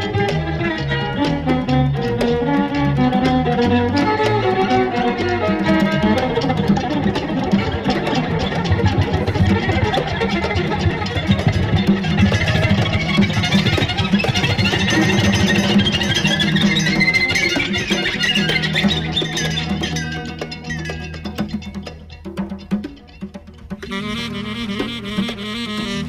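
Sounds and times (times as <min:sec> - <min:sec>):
instrumental psychedelic pop music: 0:00.0 - 0:26.0.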